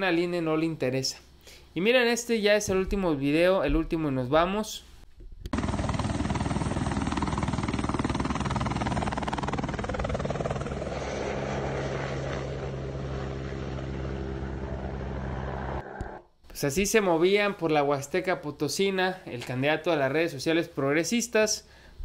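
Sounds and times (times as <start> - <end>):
helicopter rotor beating: 5.5 - 16.2.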